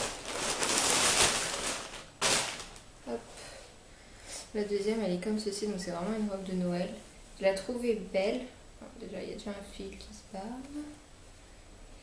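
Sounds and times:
plastic bag rustling: 0:00.0 - 0:03.0.

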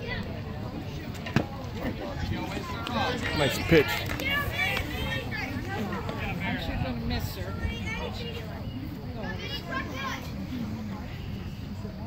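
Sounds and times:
people chattering: 0:00.0 - 0:12.0.

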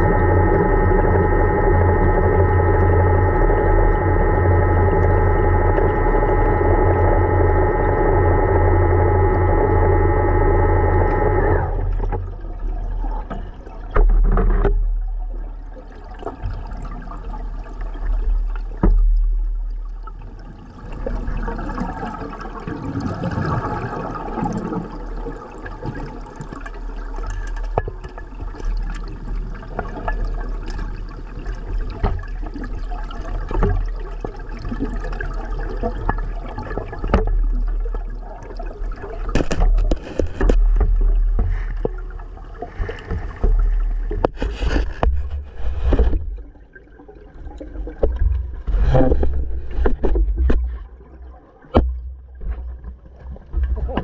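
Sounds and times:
gurgling exhaled bubbles: 0:00.0 - 0:54.0.

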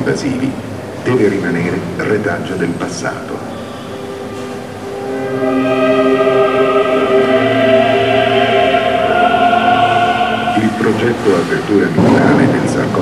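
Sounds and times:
man narrating: 0:00.0 - 0:03.5, 0:10.6 - 0:13.0
choir holding long notes: 0:03.2 - 0:12.2.

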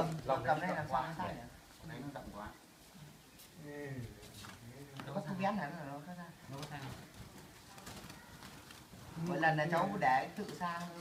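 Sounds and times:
birds fluttering in a cage: 0:02.8 - 0:11.0.

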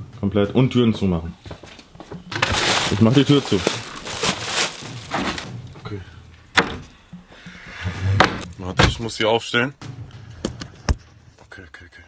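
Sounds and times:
shuffling movement: 0:02.3 - 0:05.9
person speaking: 0:02.6 - 0:05.4.

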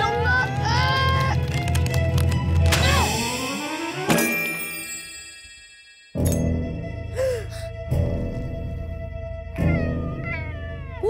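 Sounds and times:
background music with pitch glides: 0:00.0 - 0:11.0
bell ringing: 0:03.3 - 0:06.7.

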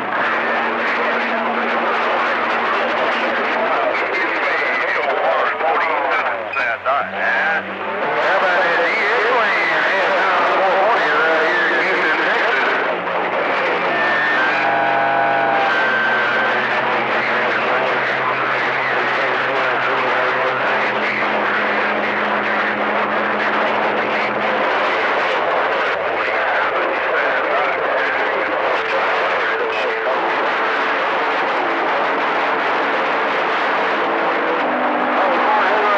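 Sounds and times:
garbled distant voices: 0:00.0 - 0:32.5, 0:34.1 - 0:35.9
radio static: 0:00.0 - 0:35.9
humming and whistling tones: 0:13.7 - 0:19.7.

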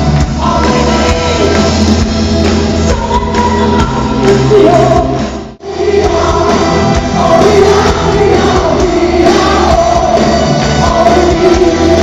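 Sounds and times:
live rock music with orchestra: 0:00.0 - 0:12.0
female lead vocals: 0:00.3 - 0:01.7, 0:02.8 - 0:12.0
backing singers: 0:02.8 - 0:12.0.

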